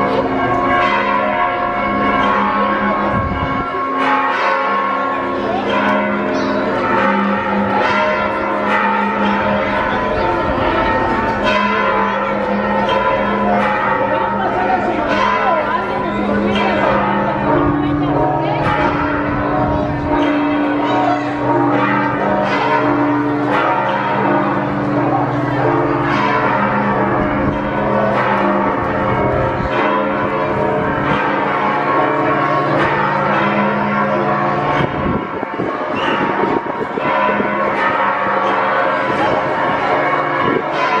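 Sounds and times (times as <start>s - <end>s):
church bells ringing: 0.0s - 41.0s
crowd chatter: 0.0s - 41.0s.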